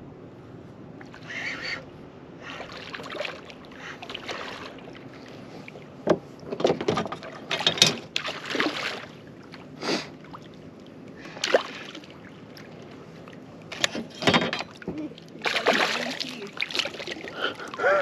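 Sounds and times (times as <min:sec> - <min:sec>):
water sloshing against hull: 0:00.7 - 0:18.0
soft splashes: 0:02.4 - 0:06.0, 0:07.2 - 0:13.9, 0:14.7 - 0:18.0.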